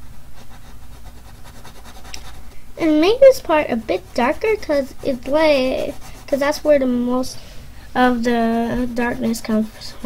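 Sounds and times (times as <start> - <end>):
coloured pencil scratching on paper: 0.0 - 7.0, 8.8 - 10.0
low steady hum: 0.0 - 10.0.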